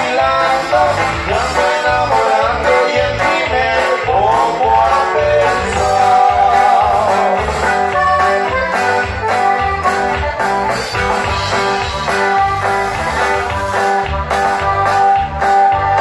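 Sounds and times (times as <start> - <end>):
accordion melody: 0.0 - 16.0
bass and drum beat: 0.0 - 16.0
guitar melody: 0.0 - 16.0.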